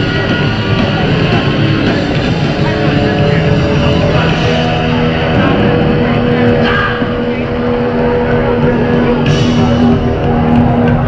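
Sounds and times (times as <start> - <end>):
distorted electric guitars: 0.0 - 11.0
punk band playing live: 0.0 - 11.0.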